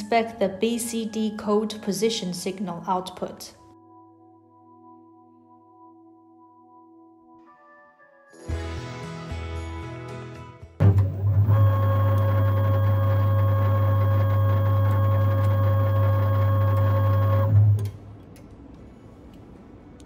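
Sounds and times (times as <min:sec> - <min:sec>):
motor starting with a jolt: 0:10.8 - 0:17.9
motor drive humming: 0:10.8 - 0:18.0.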